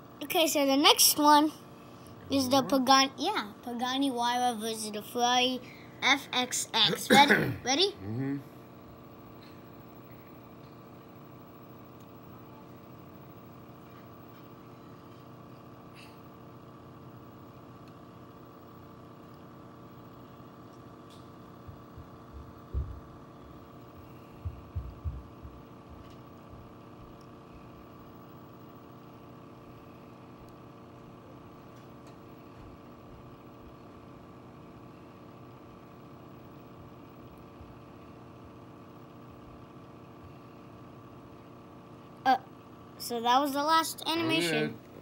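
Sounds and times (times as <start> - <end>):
steady multi-pitched hum: 0.0 - 45.0
dull low thumps: 22.0 - 23.1, 24.4 - 25.6.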